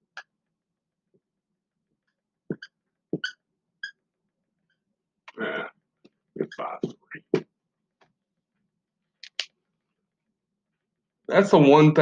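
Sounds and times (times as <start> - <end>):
marker squeaking on whiteboard: 2.0 - 4.9, 6.0 - 8.2.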